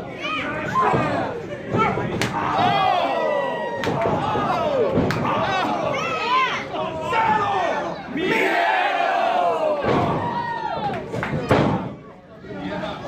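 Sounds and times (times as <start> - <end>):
crowd yelling and cheering: 2.1 - 11.3.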